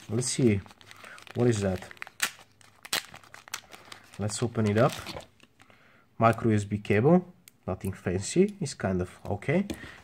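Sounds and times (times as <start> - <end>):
plastic bag crinkling: 0.0 - 5.7.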